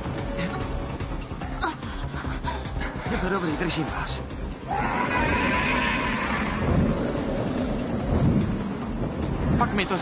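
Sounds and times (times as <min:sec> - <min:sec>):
loud low rumbling: 0:04.8 - 0:10.0.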